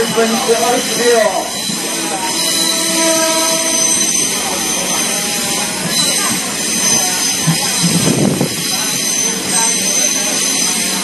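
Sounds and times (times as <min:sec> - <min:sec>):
train rushing: 0:00.0 - 0:11.0.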